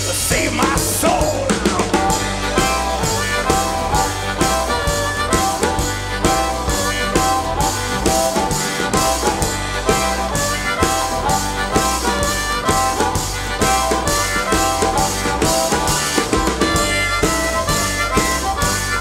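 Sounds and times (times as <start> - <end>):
harmonica solo wailing: 0.0 - 19.0
upright double bass: 0.0 - 19.0.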